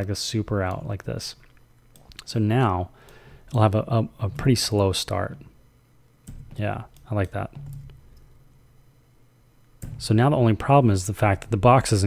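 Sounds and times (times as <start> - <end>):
person speaking: 0.0 - 5.6, 6.5 - 7.7, 9.9 - 12.0
faint low hum: 0.0 - 12.0.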